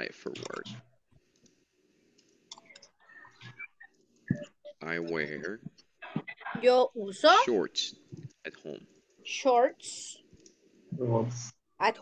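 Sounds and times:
faint clicks: 1.2 - 4.5.

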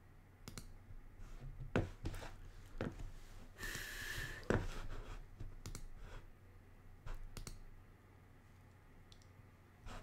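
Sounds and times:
low steady hum: 0.0 - 10.0
faint irregular clicks: 0.4 - 0.8, 5.4 - 6.0, 7.1 - 7.7, 8.6 - 9.4.

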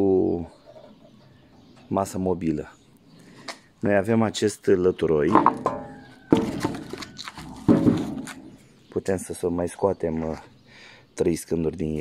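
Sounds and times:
heavy wooden slab thud: 5.3 - 6.8.

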